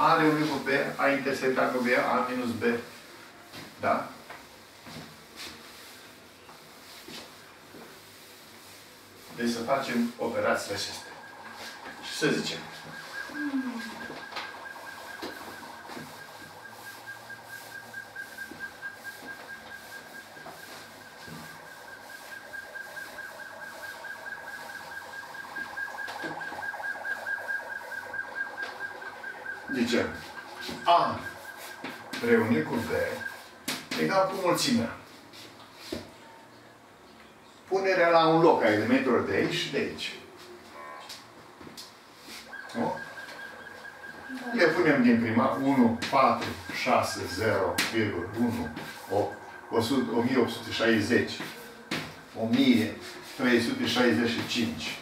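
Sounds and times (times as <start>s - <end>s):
sponge wiping a blackboard: 0.1s - 36.1s, 42.2s - 55.0s
faint steady high tone: 9.8s - 24.8s, 42.7s - 54.9s.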